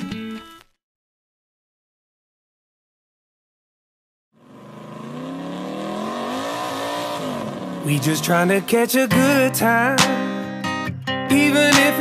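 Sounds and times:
car engine revving: 4.4s - 10.2s.

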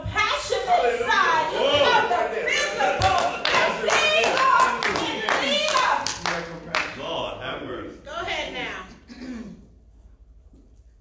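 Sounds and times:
person clearing throat: 9.0s - 9.8s.

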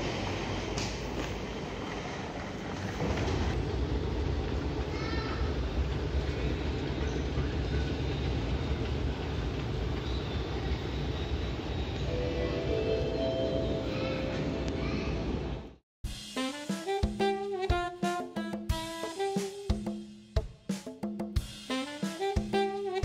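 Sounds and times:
airport terminal rumble: 0.0s - 15.7s.

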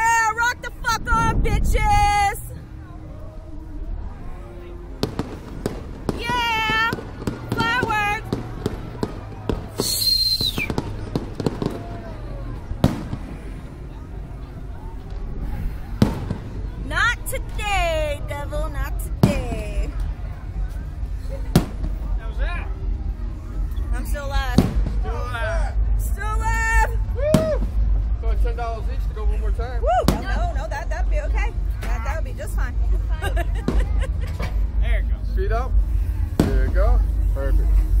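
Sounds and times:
wind buffeting microphone: 0.0s - 4.1s
low rumble of wind and motion: 0.0s - 9.8s, 10.4s - 38.0s.

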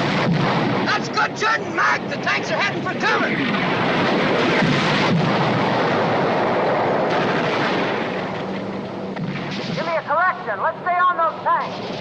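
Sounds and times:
heavy rumble: 0.0s - 12.0s
artillery shells exploding: 3.2s - 8.5s, 9.1s - 10.3s.

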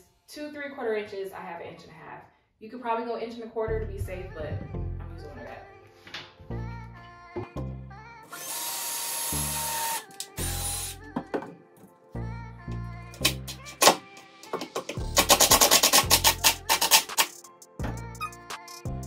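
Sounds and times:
cordless drill whirring: 8.3s - 11.0s
music with bass beat: 17.4s - 19.0s.

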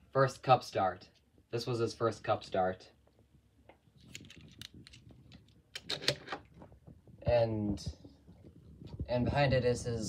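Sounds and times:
toy cars clicking on wooden shelf: 4.1s - 6.5s.

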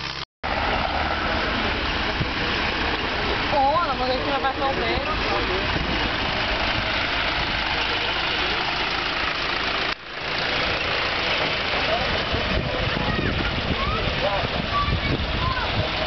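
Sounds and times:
tractor engine driving past: 0.0s - 16.0s.

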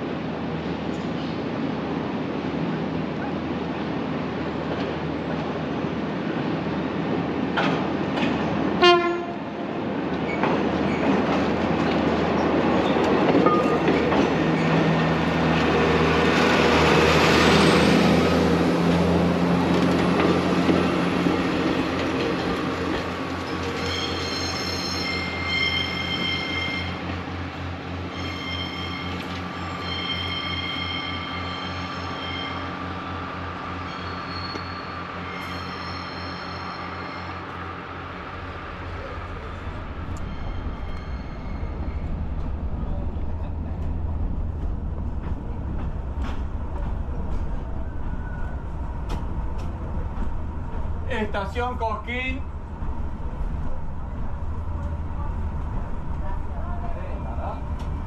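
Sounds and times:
diesel railcar engine droning: 0.0s - 58.0s
high-pitched train tones: 23.8s - 27.1s, 28.0s - 32.8s, 33.8s - 37.6s, 39.0s - 42.5s.

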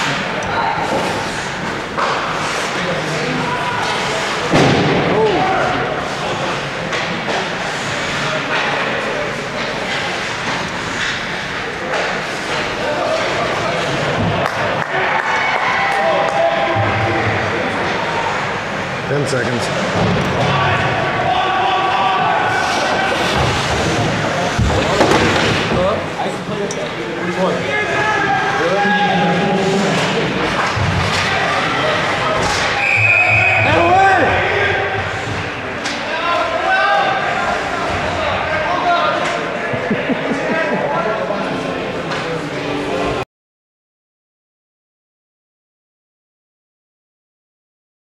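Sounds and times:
crowd shouting: 12.7s - 19.0s, 20.3s - 23.8s, 27.6s - 30.2s
referee's whistle: 32.8s - 33.9s.

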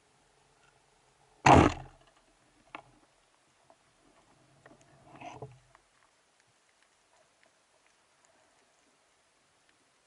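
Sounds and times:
speargun firing underwater: 1.5s - 2.0s.

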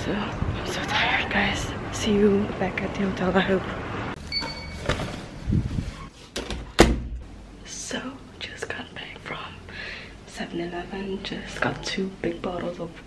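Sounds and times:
door shutting with a thunk: 6.4s - 7.2s.

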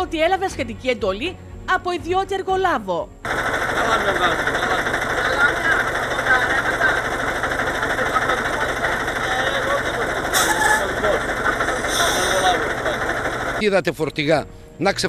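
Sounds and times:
diesel engine idling: 3.3s - 13.6s.

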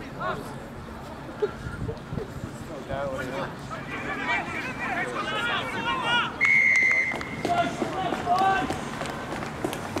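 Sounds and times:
players shouting: 3.4s - 9.3s
referee's whistle blast: 6.4s - 7.5s.

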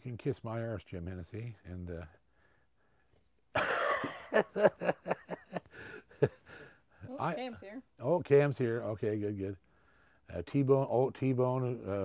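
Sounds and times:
man laughing loudly: 3.6s - 6.5s.

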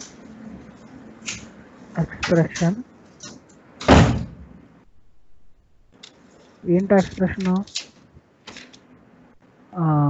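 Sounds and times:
loud thump: 3.8s - 4.5s.

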